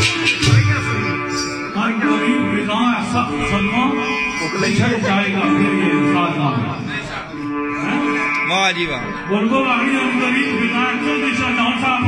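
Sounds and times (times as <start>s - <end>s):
sitar: 0.0s - 12.0s.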